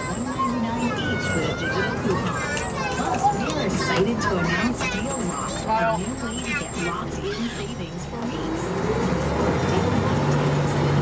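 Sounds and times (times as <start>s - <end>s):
fire engine running: 0.0s - 11.0s.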